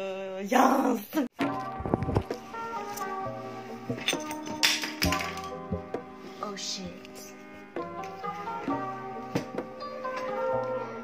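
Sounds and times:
lo-fi hip-hop music: 1.4s - 11.0s.

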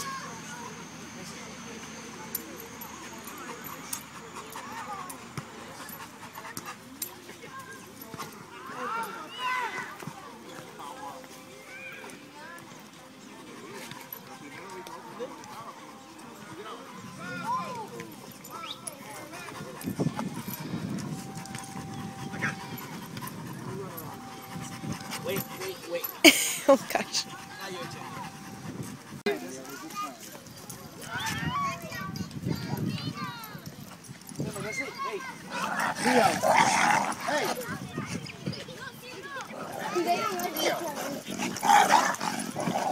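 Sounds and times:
chatter of voices: 0.0s - 42.9s
dog panting: 2.3s - 7.3s, 13.4s - 29.8s.

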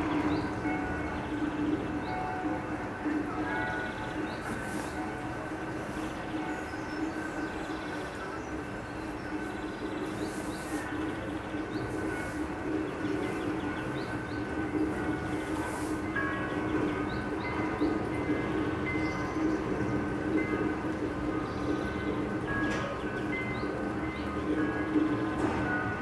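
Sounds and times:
rumble of wheels on track: 0.0s - 26.0s.

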